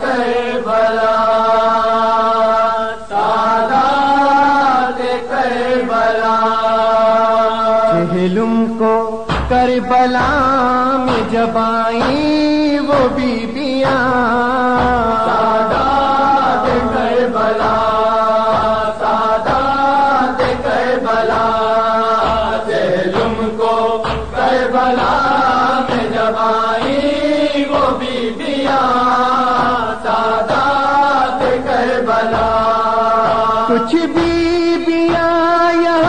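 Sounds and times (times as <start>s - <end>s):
person chanting a lament: 0.0s - 36.0s.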